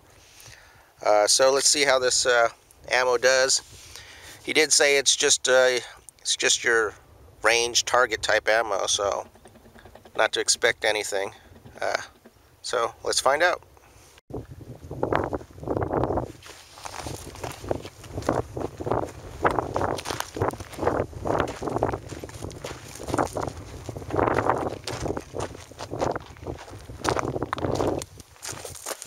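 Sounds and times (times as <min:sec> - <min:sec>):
footsteps crunching on gravel: 0:16.1 - 0:29.0
steady low rumble: 0:16.9 - 0:28.4.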